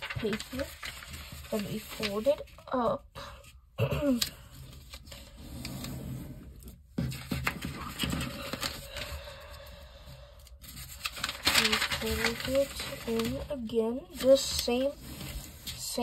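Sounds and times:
paper rustling and creasing: 0.0s - 2.8s, 4.2s - 16.0s
person clearing throat: 3.8s - 4.3s.

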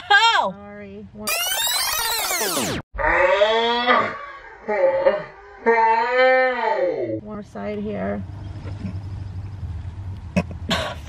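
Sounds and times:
high squeal falling in pitch: 1.3s - 2.8s.

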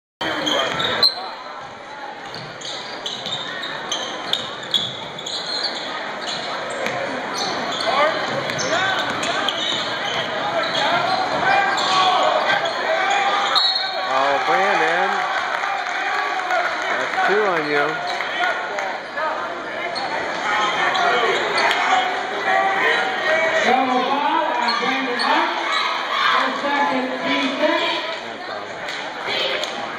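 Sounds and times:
shoes squeaking: 0.3s - 1.4s, 2.3s - 14.0s
basketball bouncing: 8.3s - 9.3s.

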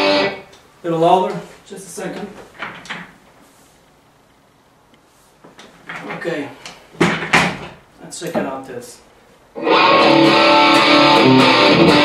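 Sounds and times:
man speaking: 0.8s - 2.4s, 6.0s - 6.6s, 8.0s - 9.1s.

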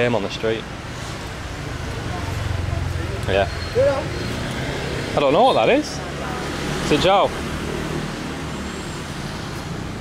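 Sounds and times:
street traffic hum: 0.0s - 10.0s.

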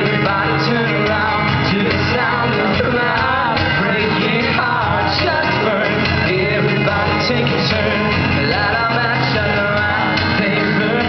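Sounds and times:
acoustic guitar strumming: 0.0s - 11.0s
man singing: 0.0s - 11.0s.

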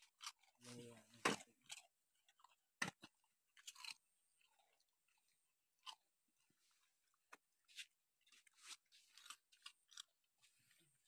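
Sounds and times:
dog crunching a biscuit: 0.0s - 6.1s, 7.7s - 10.7s.

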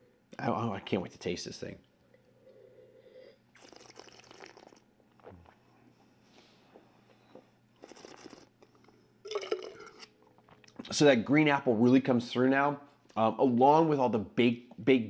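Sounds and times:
spitting into metal cup: 3.6s - 5.5s, 7.8s - 10.9s
wine slurped and swished in mouth: 3.6s - 5.6s, 7.2s - 10.8s.

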